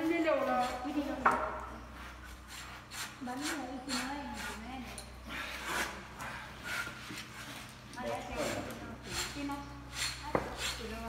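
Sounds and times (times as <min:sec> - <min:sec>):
knives scraping along hide: 0:00.0 - 0:11.0.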